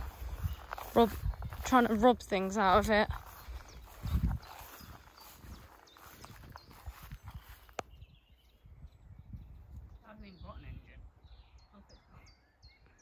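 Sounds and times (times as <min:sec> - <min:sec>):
footsteps through long grass: 0:00.0 - 0:08.2.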